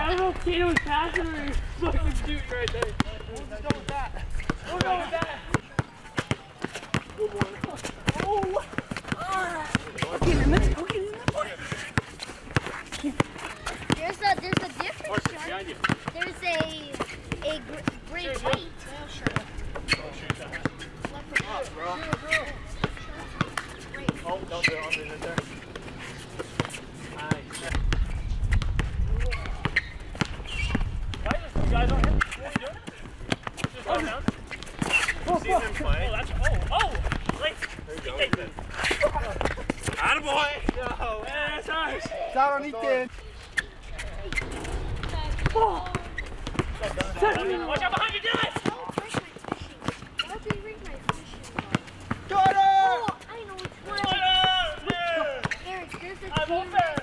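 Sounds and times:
basketball bouncing on asphalt: 2.6 - 25.9, 26.5 - 35.0, 44.2 - 57.0.

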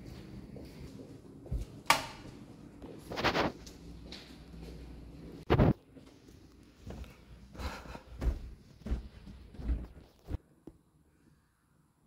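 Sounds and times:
footsteps on a hard floor: 0.0 - 4.9, 5.5 - 10.4.

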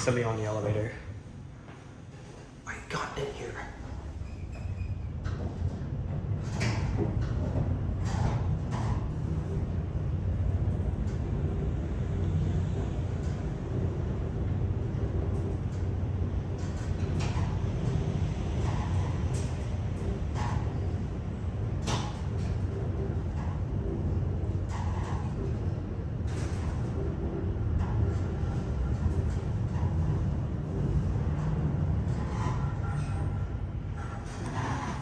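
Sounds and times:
elevator ride rumble: 0.0 - 35.0
elevator cab clicks and rattles: 4.5 - 35.0.

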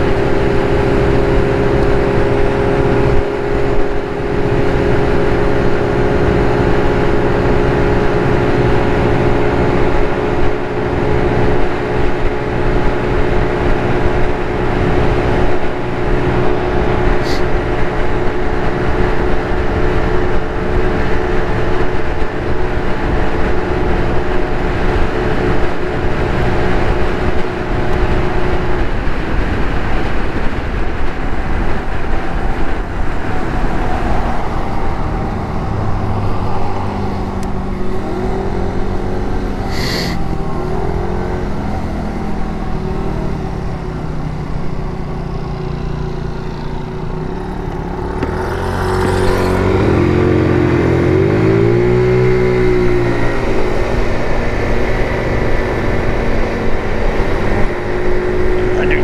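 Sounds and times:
scooter engine running: 0.0 - 59.0
wind noise on microphone: 0.0 - 59.0.

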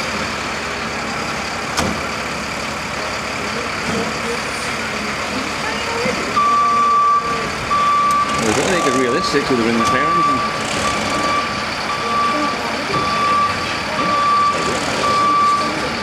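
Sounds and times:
diesel engine idling: 0.0 - 16.0
reversing alarm beeping: 5.8 - 16.0.

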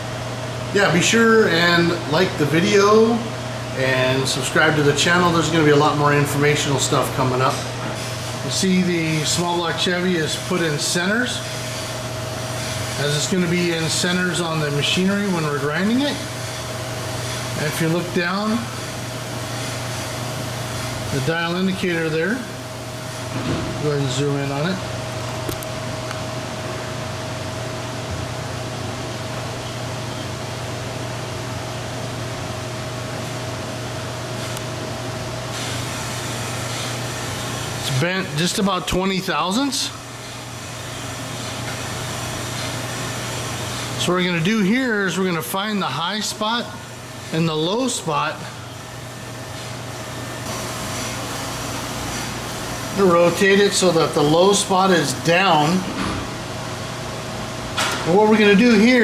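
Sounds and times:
mechanical hum with faint whine: 0.0 - 59.0.

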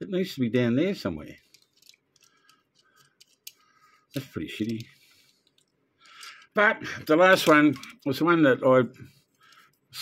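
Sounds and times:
fingers clicking plastic toy car: 1.5 - 3.6.

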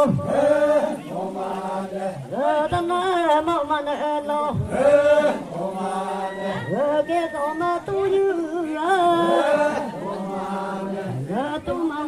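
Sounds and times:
villagers chanting a song: 0.0 - 12.0.

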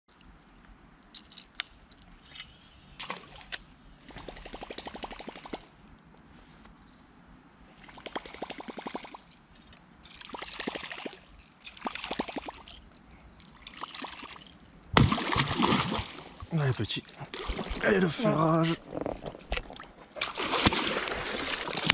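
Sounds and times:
fish striking with loud splash: 15.0 - 16.2.

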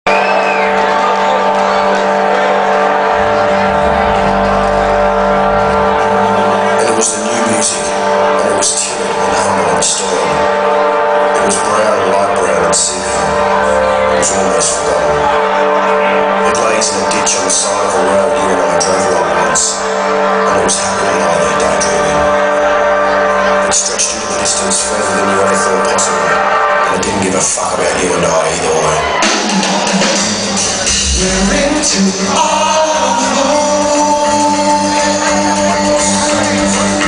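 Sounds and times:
rock band playing live: 0.1 - 26.9, 29.0 - 37.0
deep bass: 0.1 - 29.2, 30.4 - 37.0
rock band droning chord: 1.2 - 17.0.

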